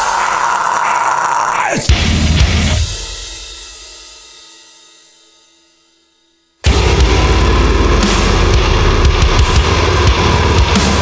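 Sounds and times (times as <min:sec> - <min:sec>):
heavy distorted deathcore band: 0:00.0 - 0:03.8, 0:06.6 - 0:11.0
rapid low drumming: 0:06.7 - 0:11.0.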